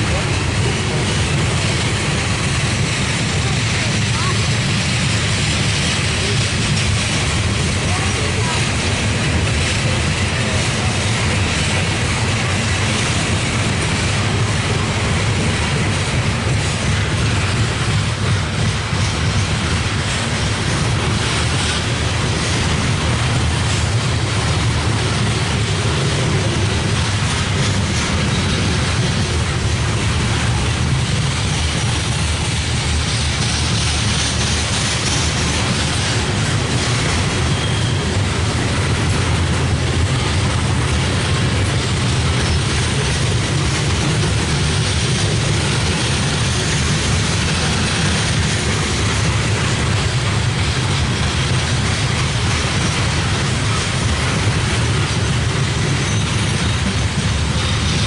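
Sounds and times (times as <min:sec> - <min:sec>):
freight train wheels rumbling on rails: 0:00.0 - 0:58.0.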